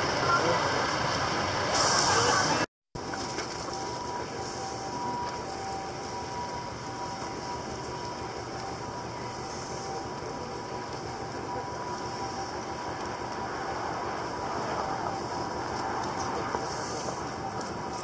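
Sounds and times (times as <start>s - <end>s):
distant traffic hum: 0.0s - 18.0s.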